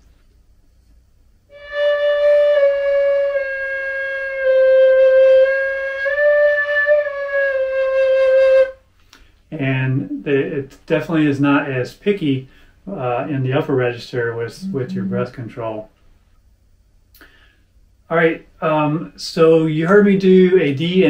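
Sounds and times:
flute playing: 0:01.5 - 0:08.8, 0:14.6 - 0:15.6.

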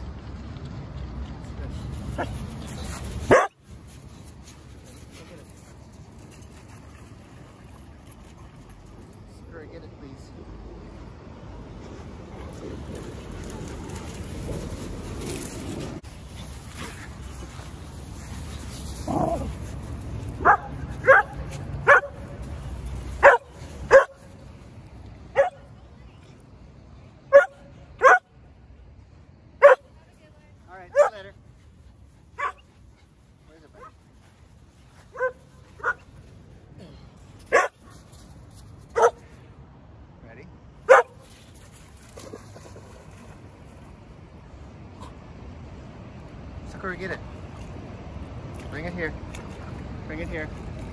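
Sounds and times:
dog barking sharply: 0:03.3 - 0:03.5, 0:37.5 - 0:37.8, 0:40.9 - 0:41.2.

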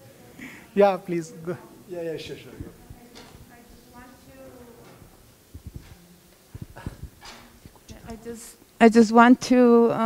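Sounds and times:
faint voices in room: 0:00.0 - 0:10.0
microphone rustle: 0:02.4 - 0:08.5
microphone handling bumps: 0:05.0 - 0:08.4.

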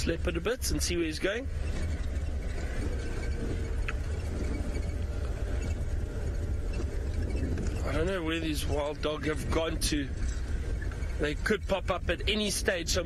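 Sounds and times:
vehicle engine rumbling: 0:00.0 - 0:13.0.

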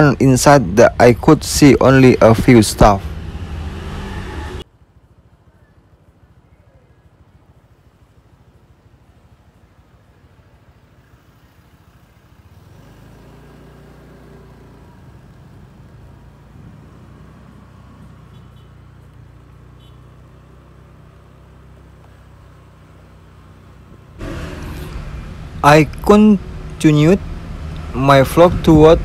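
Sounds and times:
quiet street ambience: 0:00.0 - 0:29.0
vehicle engine humming: 0:00.0 - 0:29.0.

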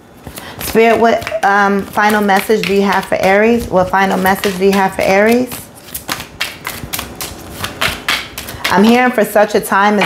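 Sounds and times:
cards being shuffled: 0:04.2 - 0:08.8.

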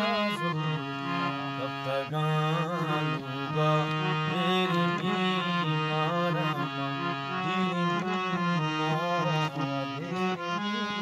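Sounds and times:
harmonium playing chords: 0:00.0 - 0:11.0
man singing ornamented line: 0:00.0 - 0:11.0.

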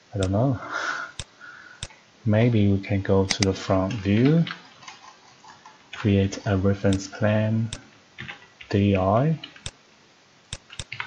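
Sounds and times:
man's voice: 0:00.2 - 0:00.6, 0:02.3 - 0:04.5, 0:06.0 - 0:07.8, 0:08.7 - 0:09.5
computer mouse clicks: 0:09.4 - 0:09.8, 0:10.5 - 0:11.0.

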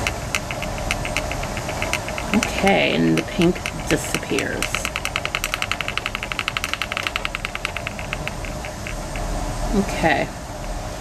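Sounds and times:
stir bar ticking against glass: 0:00.0 - 0:09.3.

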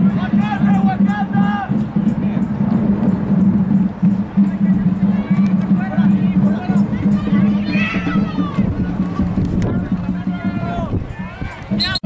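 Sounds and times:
voices shouting: 0:00.0 - 0:02.6, 0:03.2 - 0:12.0.

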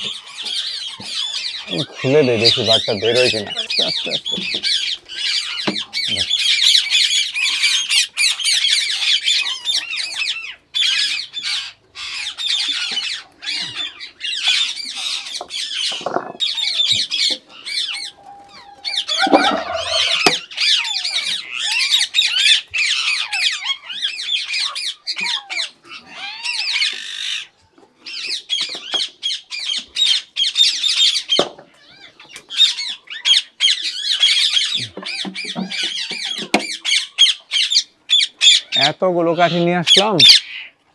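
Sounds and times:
parakeets squawking: 0:00.0 - 0:40.8.

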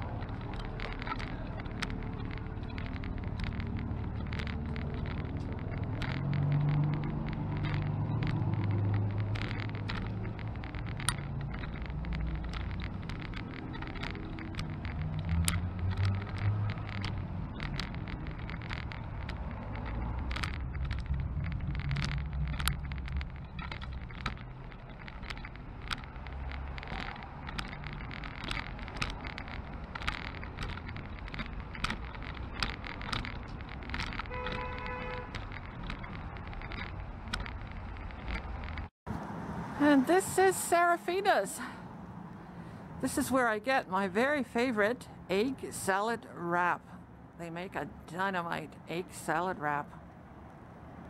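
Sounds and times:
wheels rattling over pavement: 0:00.0 - 0:46.9
low street traffic rumble: 0:00.0 - 0:51.0.

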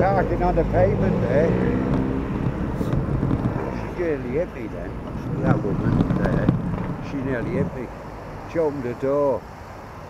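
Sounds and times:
vehicle engine running: 0:00.0 - 0:08.7.

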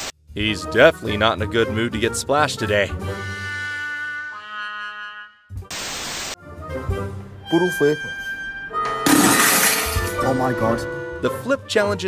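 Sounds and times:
background music: 0:00.2 - 0:05.8, 0:06.4 - 0:12.0
glass shattering: 0:08.9 - 0:10.2.

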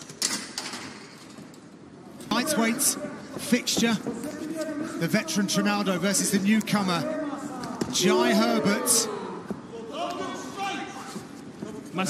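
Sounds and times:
faint arena noise: 0:00.0 - 0:12.0.

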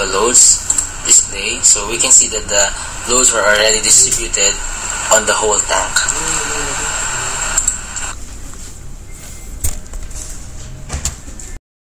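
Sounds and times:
room noise: 0:00.0 - 0:11.4.

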